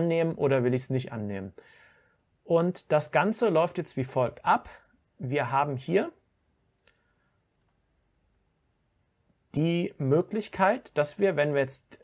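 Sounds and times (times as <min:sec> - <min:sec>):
faint mouse clicks: 0:06.7 - 0:07.9.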